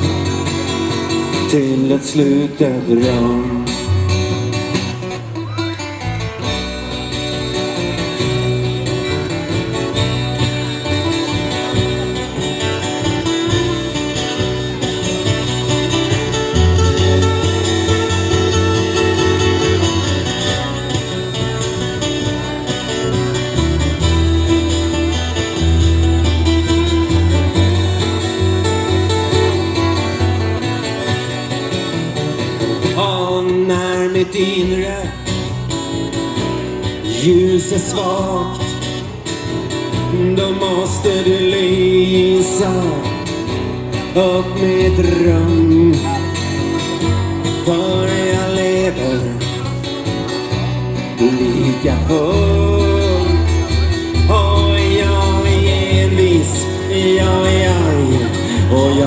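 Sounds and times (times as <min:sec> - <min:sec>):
acoustic guitars strummed: 0:00.0 - 0:59.0
low bass notes: 0:00.0 - 0:59.0.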